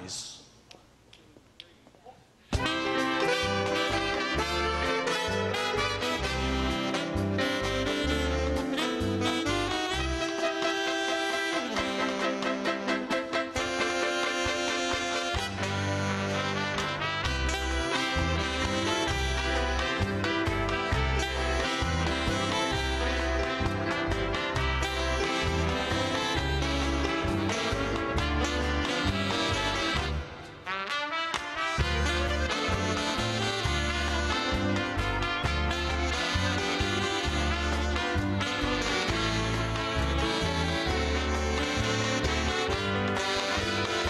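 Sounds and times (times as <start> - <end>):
big band playing latin music: 2.5 - 44.0.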